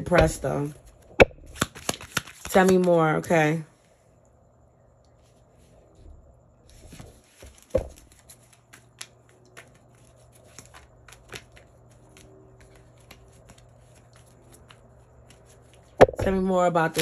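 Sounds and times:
cards being shuffled: 0.8s - 3.0s, 6.7s - 16.0s
faint low hum: 2.5s - 16.9s.

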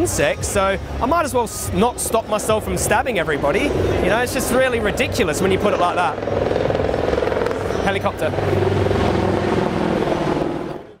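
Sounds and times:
helicopter engine and rotor: 0.0s - 11.0s.

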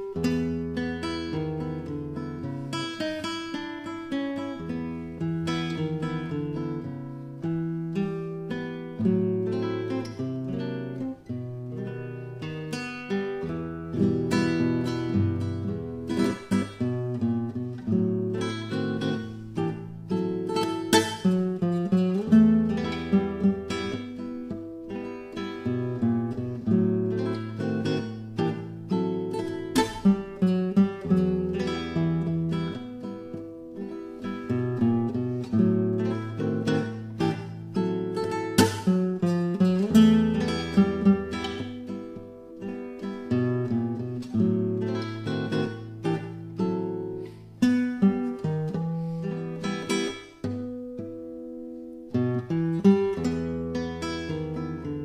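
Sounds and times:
acoustic guitar picking: 0.0s - 55.0s.

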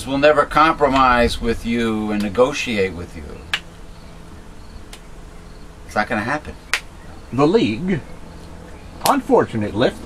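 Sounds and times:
low electrical buzz: 0.0s - 10.0s.

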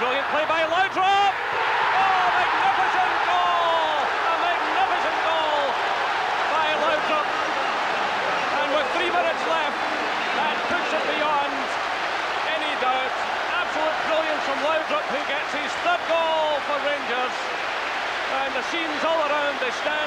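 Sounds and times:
crowd clapping: 0.0s - 20.0s
crowd roaring and shouting: 0.0s - 20.0s.

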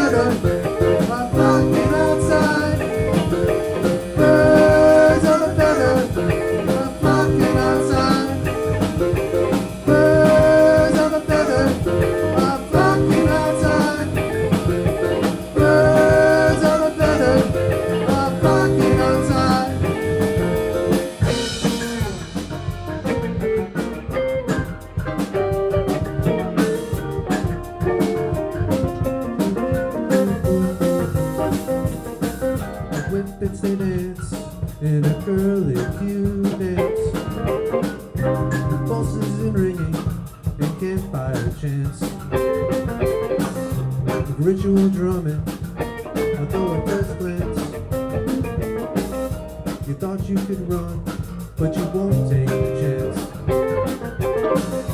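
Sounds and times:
drum strokes: 0.0s - 54.9s
live band playing blues jam: 0.0s - 54.9s.

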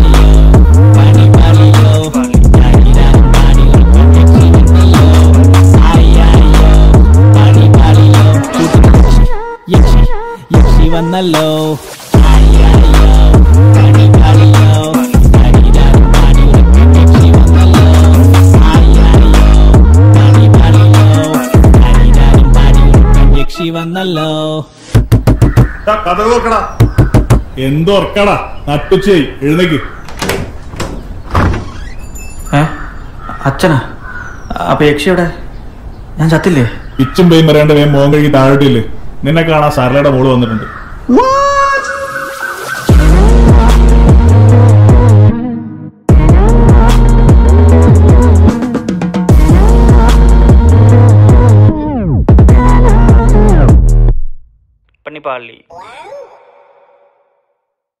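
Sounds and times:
rap vocal with reverb echo: 0.0s - 24.7s, 41.9s - 48.7s, 49.3s - 54.0s
low bass hum: 12.2s - 23.4s, 42.9s - 48.5s, 49.3s - 54.5s.

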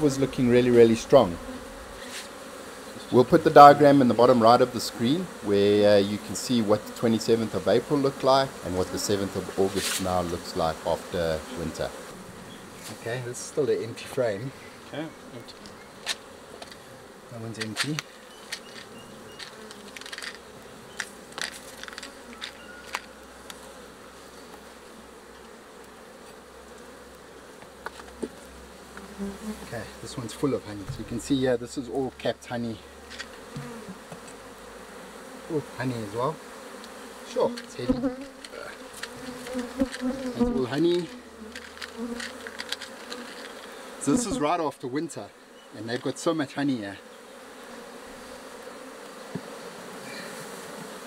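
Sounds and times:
bees humming: 0.0s - 51.0s
honeybees buzzing: 0.0s - 51.0s
hive tool clicking and scraping: 9.0s - 10.6s, 15.5s - 16.9s, 17.5s - 23.7s, 27.6s - 29.3s, 33.0s - 34.5s, 36.7s - 44.4s.

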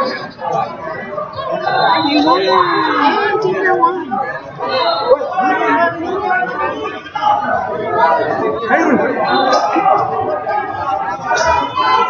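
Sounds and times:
chatter of people talking: 0.0s - 12.0s.

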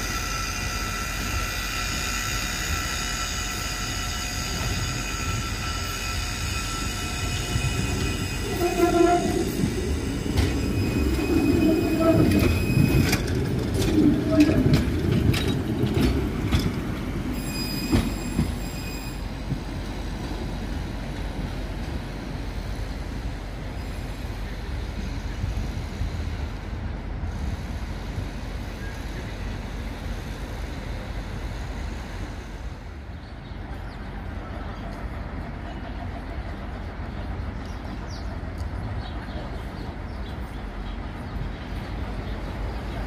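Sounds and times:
tram whine: 0.0s - 43.0s
street traffic noise: 3.5s - 43.0s
wheels clacking over rail joints: 7.9s - 18.8s.

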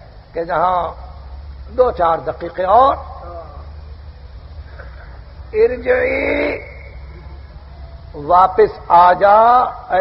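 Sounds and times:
recording hum and hiss: 0.0s - 10.0s.

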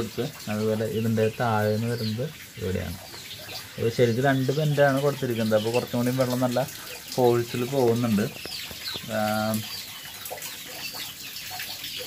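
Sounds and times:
person talking: 0.0s - 3.0s, 3.8s - 8.4s, 9.0s - 9.7s
water trickling into tank: 0.0s - 12.0s.

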